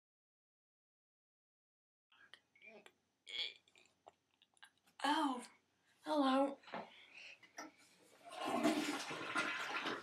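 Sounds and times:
toilet flushing: 8.2s - 10.0s.

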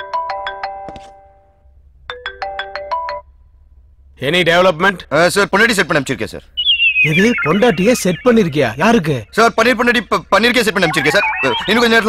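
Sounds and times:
phone ringtone chiming: 6.6s - 8.6s, 10.8s - 12.0s.

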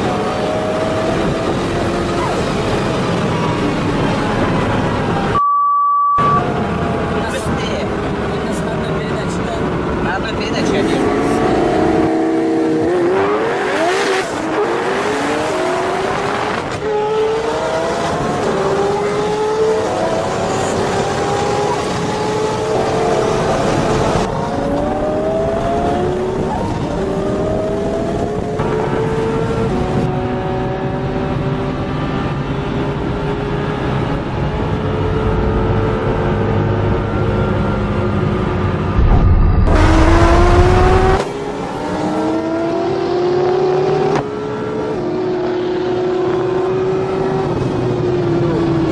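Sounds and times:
wind and road noise: 0.0s - 5.4s, 6.3s - 48.9s
sports car engine accelerating: 10.6s - 48.9s.

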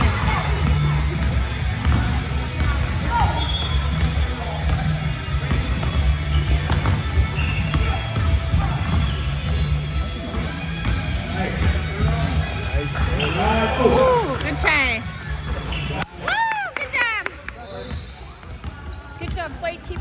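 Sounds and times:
sneakers squeaking on court: 0.0s - 16.1s, 17.4s - 20.0s
basketball dribbling on hardwood floor: 18.6s - 20.0s.

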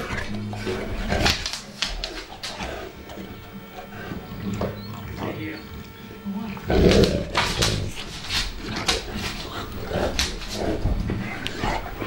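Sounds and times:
dogs making vocal noises: 6.4s - 12.0s.

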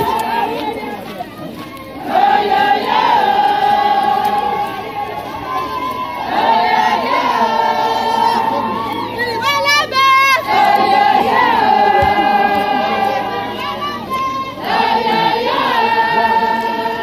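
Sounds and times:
women singing in unison: 2.0s - 17.0s.

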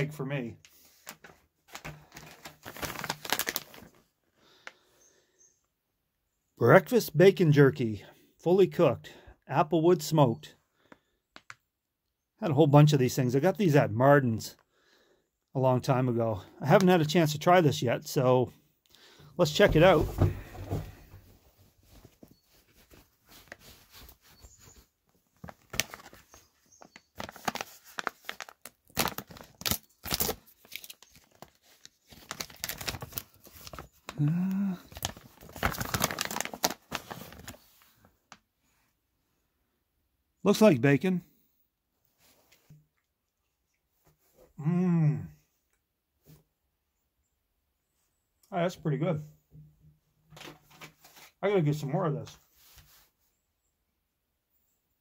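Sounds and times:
plastic pouch crinkling: 0.7s - 4.7s, 21.9s - 37.9s
plastic bag tearing open: 1.7s - 4.0s, 25.4s - 37.7s.

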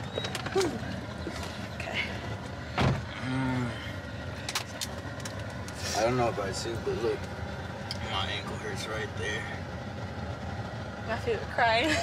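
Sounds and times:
low hum inside car cabin: 0.0s - 12.0s.

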